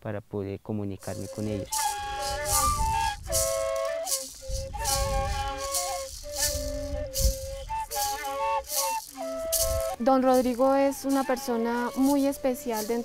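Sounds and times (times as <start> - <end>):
duct flutes playing melody: 1.0 - 13.0
maraca shaken in a beat: 1.0 - 13.0.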